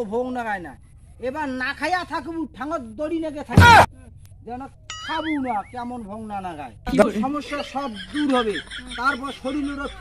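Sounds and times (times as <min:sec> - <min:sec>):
man talking: 0:00.0 - 0:10.0
comic ding with wobbling pitch: 0:04.9 - 0:05.6.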